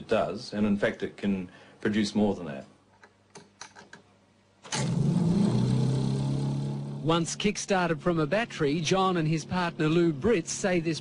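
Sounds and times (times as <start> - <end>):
motor-generator humming: 4.7 - 11.0.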